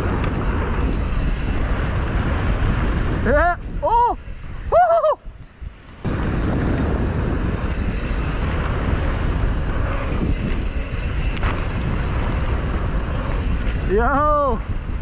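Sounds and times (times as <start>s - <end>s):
bike tyres rolling on dirt: 0.0s - 15.0s
wind rushing over microphone: 0.0s - 15.0s.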